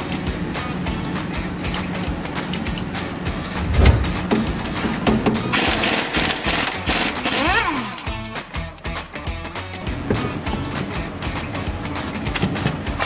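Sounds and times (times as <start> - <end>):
background music: 0.0 - 13.0
aerosol can spraying: 1.4 - 4.3.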